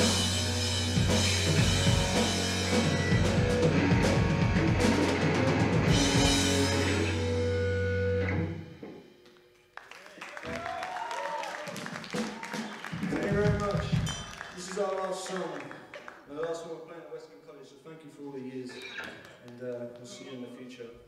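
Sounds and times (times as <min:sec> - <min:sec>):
bass guitar: 0:00.0 - 0:08.9
drum kit: 0:00.0 - 0:09.2, 0:11.6 - 0:14.8
electric guitars: 0:00.0 - 0:09.4, 0:18.7 - 0:20.3.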